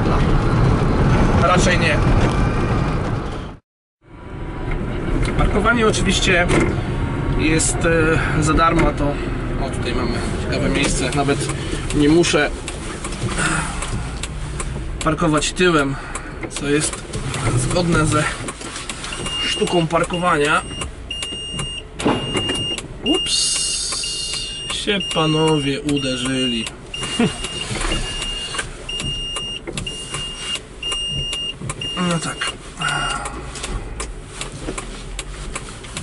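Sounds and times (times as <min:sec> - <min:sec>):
low car noise: 0:00.0 - 0:36.0
high warning beeps: 0:19.1 - 0:33.2.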